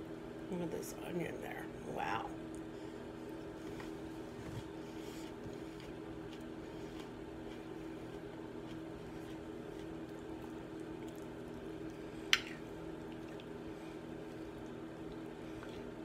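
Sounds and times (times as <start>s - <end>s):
wet chewing: 4.7s - 16.0s.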